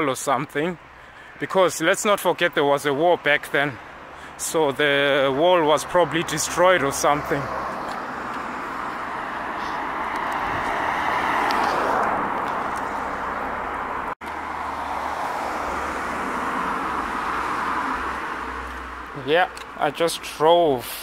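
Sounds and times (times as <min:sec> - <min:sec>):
road traffic: 0:00.0 - 0:21.0.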